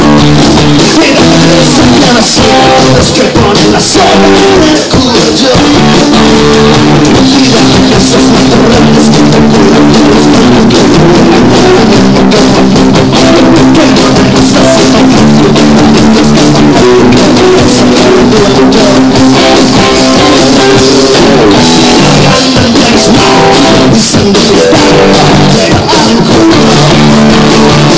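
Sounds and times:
drum kit: 0.0 - 27.9
electric bass: 0.0 - 27.9
electric guitars: 0.0 - 27.9.

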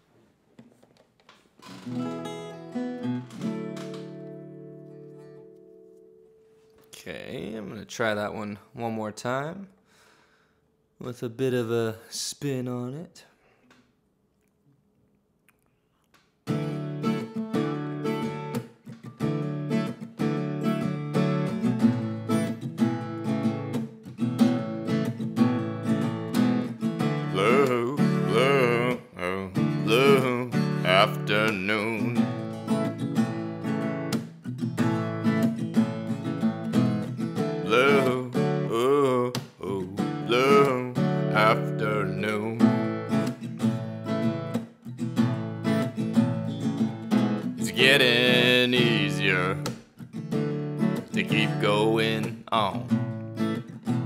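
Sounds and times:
acoustic guitar strumming chords: 1.6 - 7.6, 16.5 - 54.0
wordless wavering vocal: 27.3 - 32.2, 37.6 - 42.7, 47.6 - 49.6, 51.2 - 52.9.

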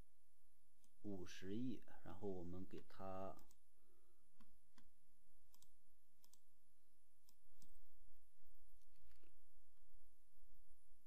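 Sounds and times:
computer mouse clicking: 3.4 - 3.6, 4.4 - 4.9, 5.5 - 6.5, 7.2 - 7.8, 8.8 - 9.4.

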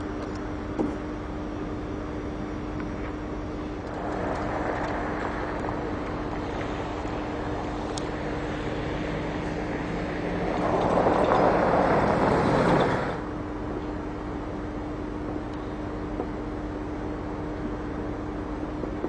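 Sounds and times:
low engine hum: 0.0 - 19.0
wind rushing on microphone: 3.9 - 13.3.

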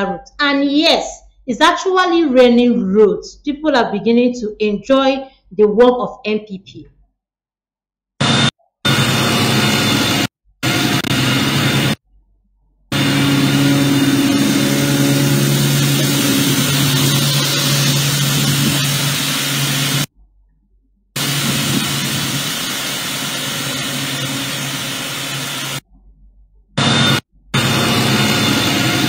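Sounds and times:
diesel machinery engine hum: 12.9 - 20.1
loud hiss: 13.0 - 20.1, 21.2 - 25.8.

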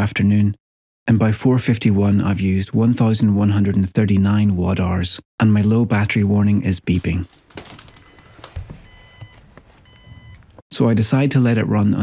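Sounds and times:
low-battery warning beeping: 7.9 - 10.5.

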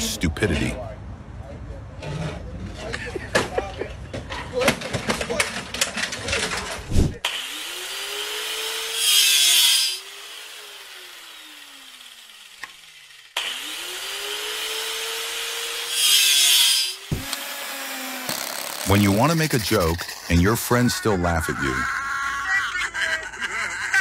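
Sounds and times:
angle grinder whining and grinding: 7.2 - 22.5.

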